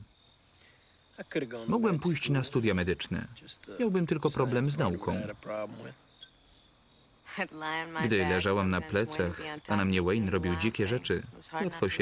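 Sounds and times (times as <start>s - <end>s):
faint crickets chirping: 0.0s - 12.0s
person speaking: 1.6s - 2.7s, 3.6s - 5.9s, 7.8s - 12.0s.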